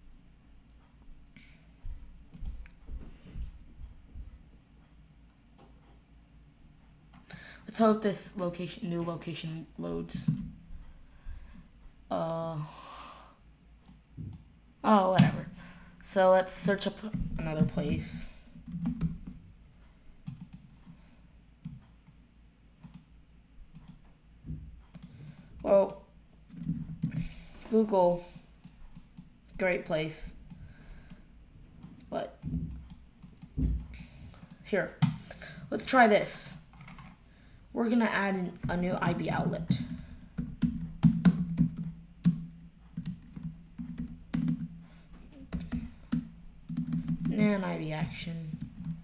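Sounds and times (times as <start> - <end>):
steady low hum: 0.0 - 49.0
computer keyboard keystrokes: 18.6 - 19.4, 20.2 - 21.0, 38.8 - 44.8, 45.5 - 49.0.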